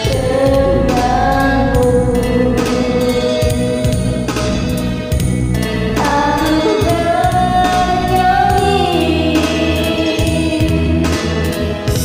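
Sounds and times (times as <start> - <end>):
woman singing with vibrato: 0.0 - 11.2
karaoke backing track: 0.0 - 12.0.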